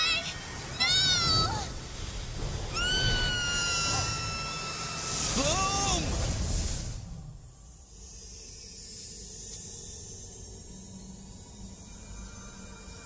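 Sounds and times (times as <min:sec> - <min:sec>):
low rumble: 0:00.3 - 0:12.9
high-pitched wavering cries: 0:02.7 - 0:05.9.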